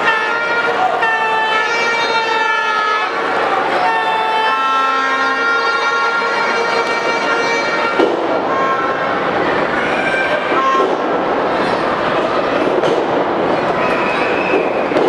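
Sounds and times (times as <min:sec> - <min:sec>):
arena crowd din: 0:00.0 - 0:15.0
crowd long-held tones: 0:00.0 - 0:15.0.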